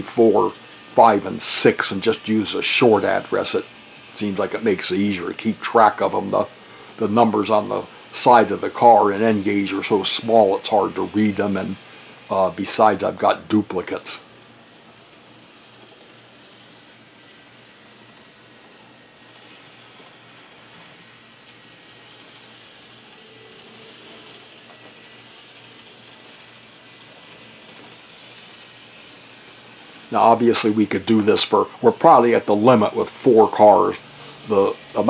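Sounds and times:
model streetcars whirring on track: 0.0 - 35.0.

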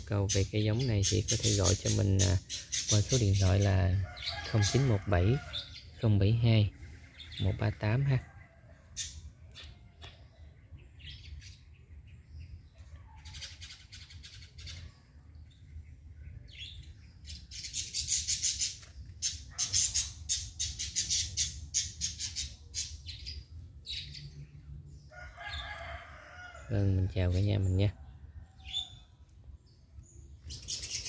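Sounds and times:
small birds chirping: 0.0 - 31.0.

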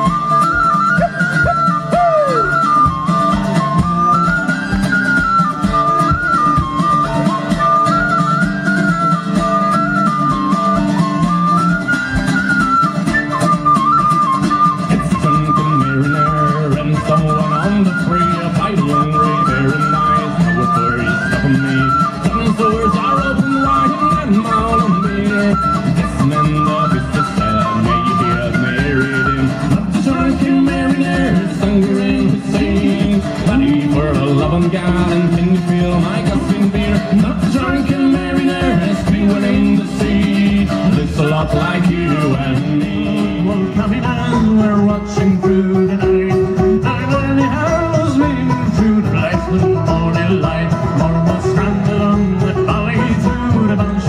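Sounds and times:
tin whistle melody: 0.0 - 31.4
frame drum beat: 0.0 - 54.0
mandolin: 0.0 - 54.0
strummed guitar: 0.0 - 54.0.

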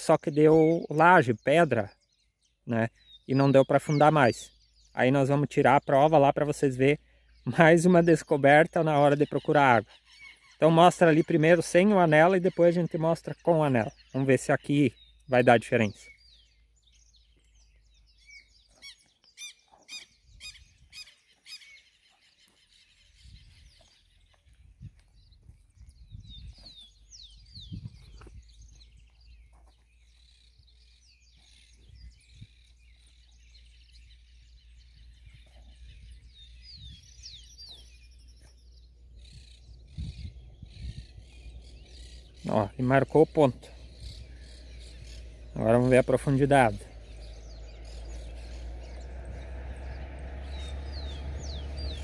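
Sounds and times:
birds chirping and whistling: 0.0 - 52.0.

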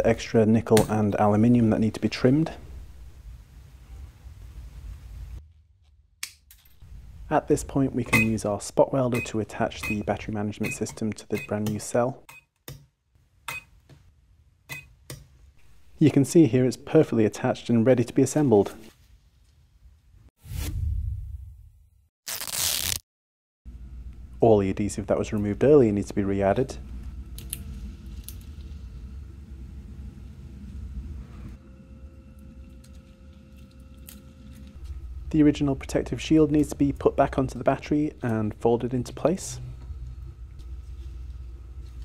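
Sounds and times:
low steady hum: 0.0 - 5.4, 6.6 - 12.3, 23.7 - 42.0.

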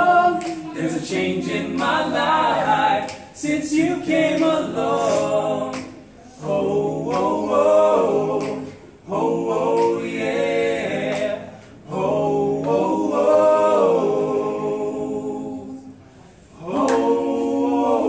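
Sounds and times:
men singing close harmony: 0.0 - 15.8, 16.6 - 18.0
breaths: 16.0 - 16.6.

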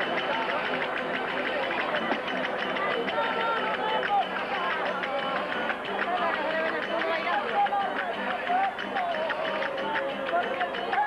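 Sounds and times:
strummed guitars: 0.0 - 11.0.

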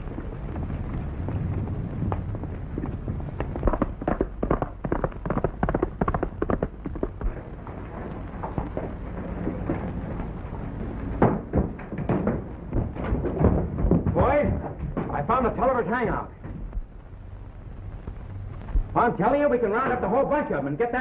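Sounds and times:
horse hoofbeats galloping: 0.0 - 17.0
sharp knocks: 11.0 - 15.8.

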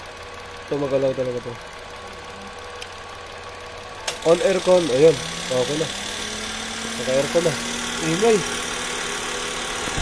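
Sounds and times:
car engine idling: 0.0 - 10.0.

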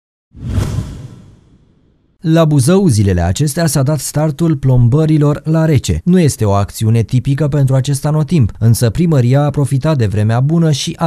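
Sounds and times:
whoosh sound effect: 0.4 - 2.0.

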